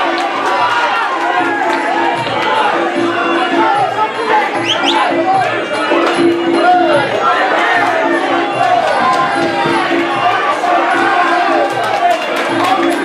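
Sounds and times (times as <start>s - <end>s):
crowd shouting and cheering: 0.0s - 13.0s
music with steady beat: 0.0s - 13.0s.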